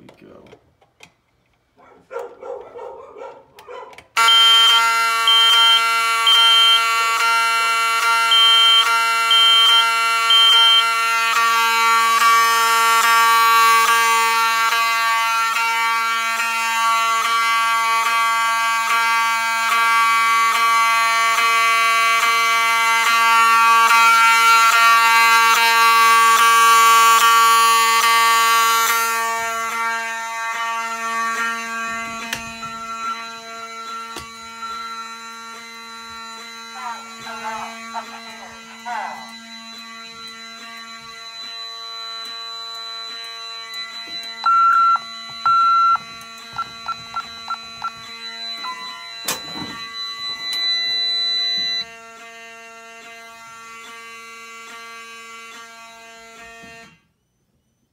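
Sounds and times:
fire alarm horn: 2.2 - 57.9.

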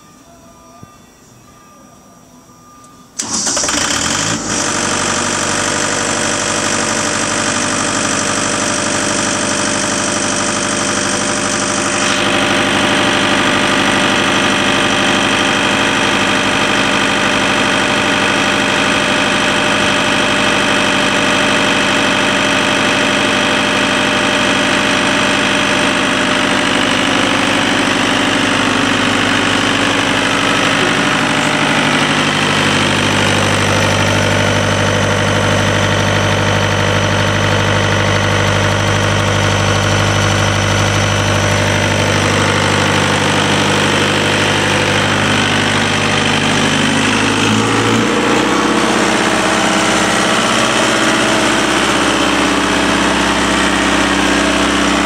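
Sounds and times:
diesel pump engine running: 3.2 - 55.0.

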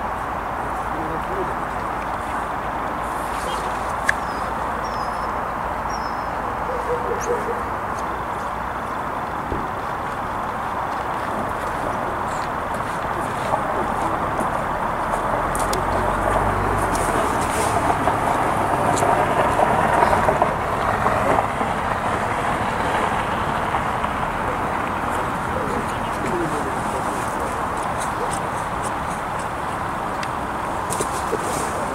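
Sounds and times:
steady outdoor noise: 0.0 - 31.9
murmur of voices: 23.0 - 31.9.

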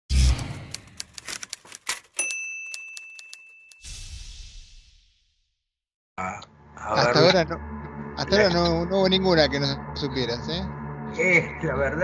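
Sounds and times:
bright bell ding: 2.2 - 3.9.

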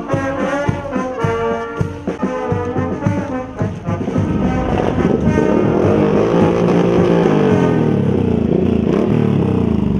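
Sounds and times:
motorcycles riding past: 3.4 - 9.9.

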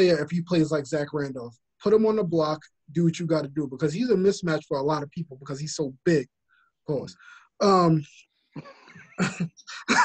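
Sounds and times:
men laughing: 8.7 - 10.0.

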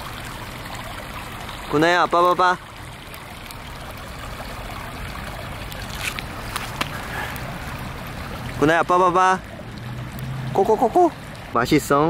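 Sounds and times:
creek water flowing: 0.0 - 12.0.

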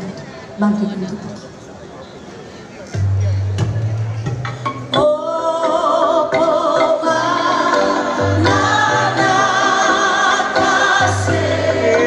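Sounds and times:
group of voices singing: 5.0 - 12.0.

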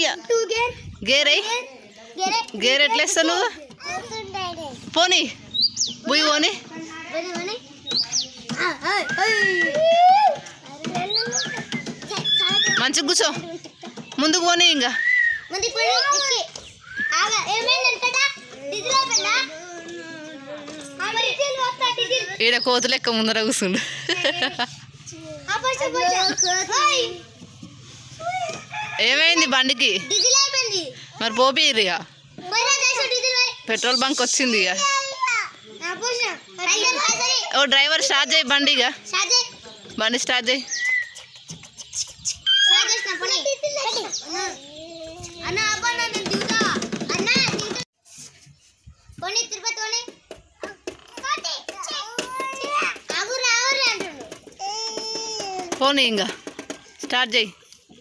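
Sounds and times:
children talking and calling out: 0.0 - 58.0
distant rooster crowing: 28.2 - 30.4.

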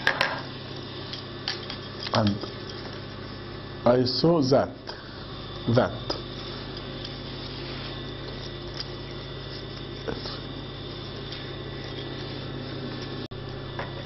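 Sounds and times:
low machine hum: 0.0 - 14.0.

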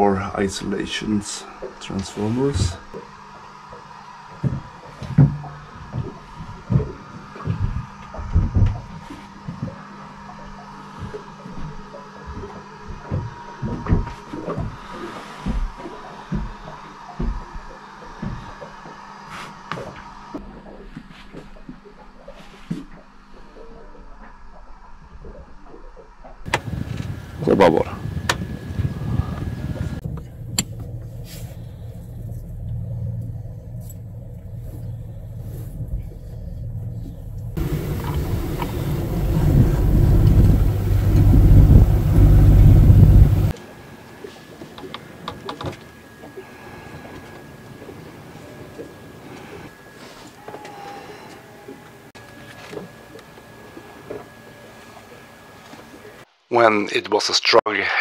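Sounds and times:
electric motors rumbling: 0.5 - 20.8, 26.5 - 56.2.

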